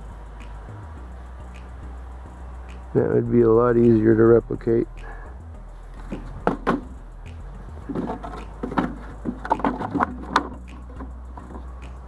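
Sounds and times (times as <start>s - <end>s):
steady low rumble: 0.0s - 12.0s
wooden knocks and clacks: 6.1s - 6.9s, 7.8s - 11.7s.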